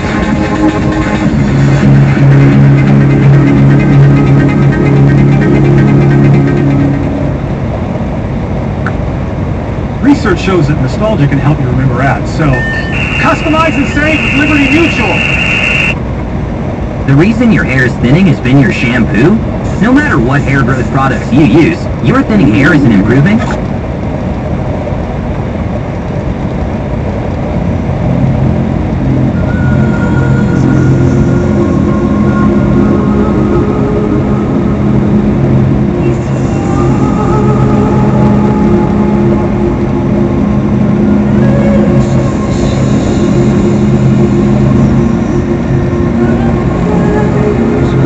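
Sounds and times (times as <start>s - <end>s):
radio playing music: 0.0s - 7.6s, 10.0s - 16.0s, 17.1s - 23.6s, 28.0s - 48.0s
road noise: 0.0s - 48.0s
truck engine drone: 0.0s - 48.0s.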